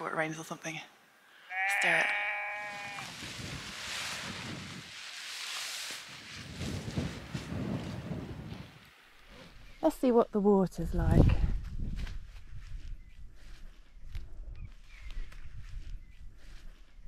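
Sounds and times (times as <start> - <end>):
tent fabric rustling and flapping: 3.0 - 9.6.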